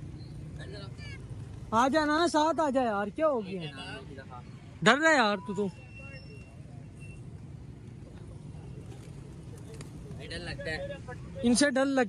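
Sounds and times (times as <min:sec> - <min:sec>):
distant traffic: 0:00.0 - 0:12.0.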